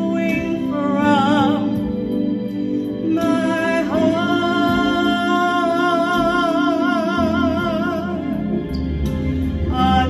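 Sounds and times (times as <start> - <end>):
organ chords: 0.0 - 10.0.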